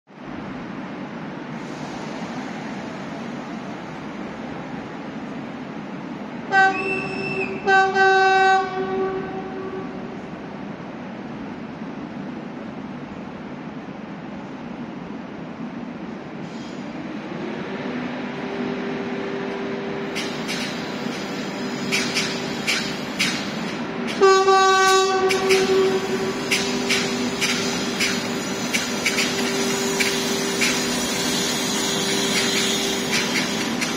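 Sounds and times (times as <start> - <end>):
rumble of approaching train: 0.1 - 33.9
train horn: 6.5 - 10.2, 24.1 - 26.9.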